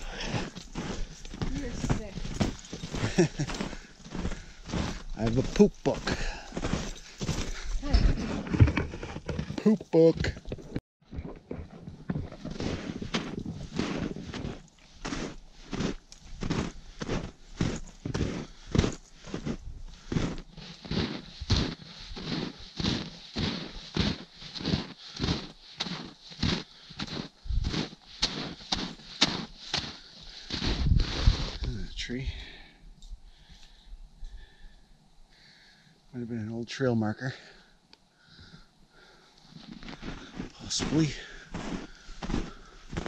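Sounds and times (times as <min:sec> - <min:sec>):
footsteps crunching in snow: 0:00.0 - 0:32.4, 0:39.0 - 0:43.0.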